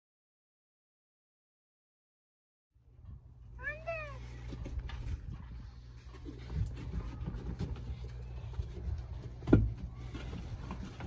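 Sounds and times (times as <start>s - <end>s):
dog whining: 3.6s - 4.3s.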